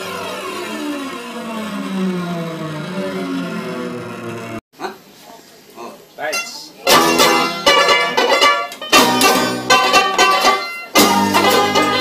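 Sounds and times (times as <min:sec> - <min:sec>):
layered tones sliding downward: 0:00.0 - 0:04.6.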